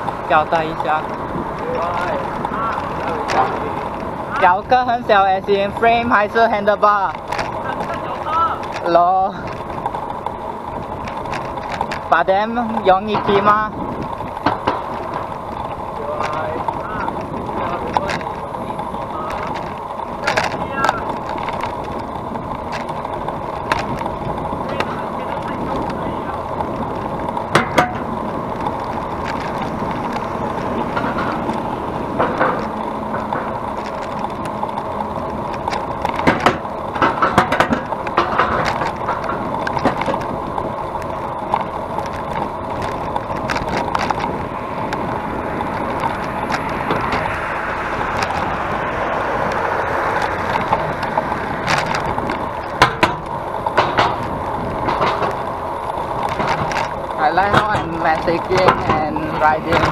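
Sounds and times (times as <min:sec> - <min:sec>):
passing traffic: 0:00.0 - 0:59.9
wind noise: 0:00.0 - 0:59.9.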